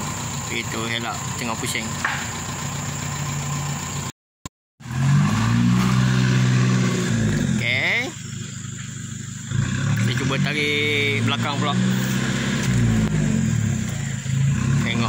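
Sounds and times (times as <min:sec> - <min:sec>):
vehicle engine idling: 0:00.0 - 0:04.1, 0:04.8 - 0:15.0
pickup engine revving: 0:04.8 - 0:15.0.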